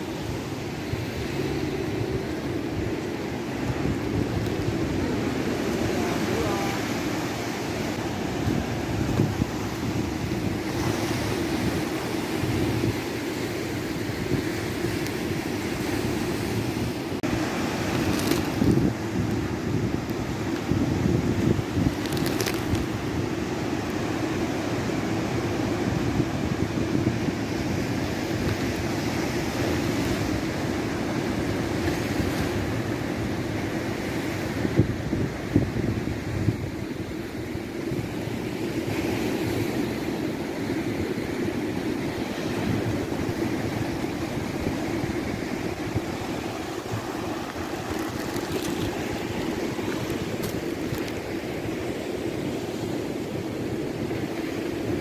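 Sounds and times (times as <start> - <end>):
surf breaking on rocks: 0.0 - 33.0, 41.7 - 53.6
wind rumbling on microphone: 0.0 - 55.0.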